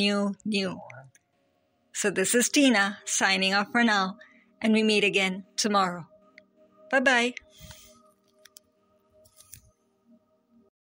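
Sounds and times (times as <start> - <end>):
faint background music: 0.0 - 10.7
soft clicks: 7.4 - 9.7.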